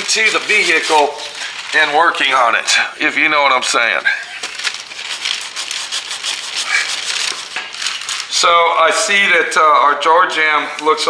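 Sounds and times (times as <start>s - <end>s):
sandpaper rasping on paint: 0.0s - 2.6s, 4.2s - 8.4s.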